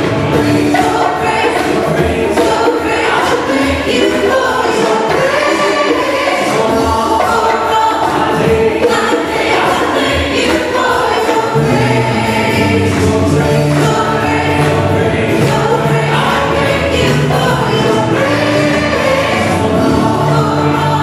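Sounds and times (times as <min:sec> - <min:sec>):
band with piano drums and guitars: 0:00.0 - 0:21.0
choir singing gospel song: 0:00.0 - 0:21.0.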